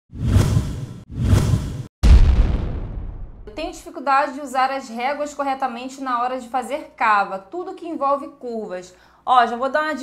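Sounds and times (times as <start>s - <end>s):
whoosh sound effects: 0.2s - 3.5s.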